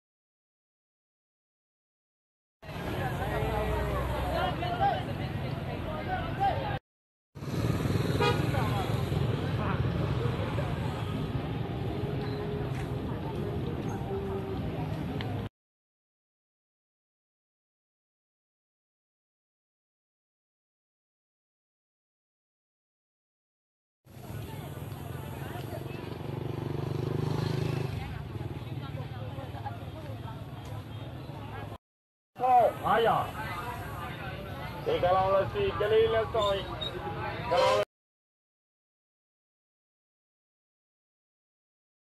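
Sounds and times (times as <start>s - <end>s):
crowd: 2.6s - 6.8s, 7.5s - 15.5s, 24.1s - 31.8s, 32.4s - 37.8s
vehicle engines at low speed: 2.6s - 6.8s, 7.4s - 15.5s, 24.1s - 31.8s
short vehicle horn toot: 8.2s - 8.5s, 37.5s - 37.9s.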